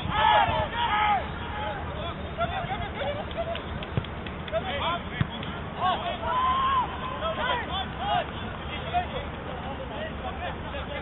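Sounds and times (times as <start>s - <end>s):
football players shouting: 0.0s - 3.0s, 5.7s - 9.1s
football kick thump: 5.2s - 5.4s.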